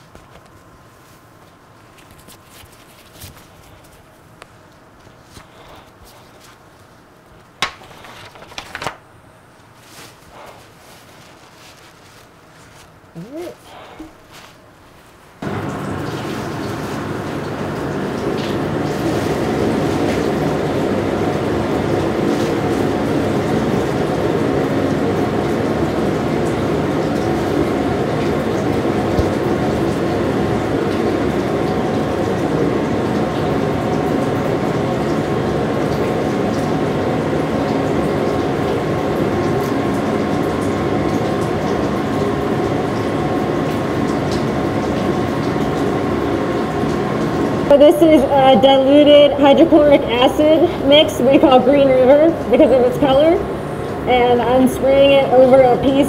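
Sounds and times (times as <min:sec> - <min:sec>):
ventilation drone with tones: 0:00.0 - 0:56.0.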